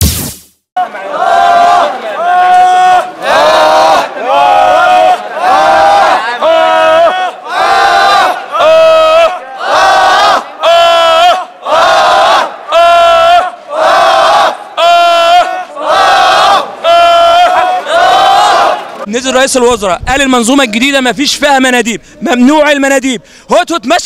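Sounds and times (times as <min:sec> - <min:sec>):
crowd of men chanting: 0:00.8 - 0:19.1.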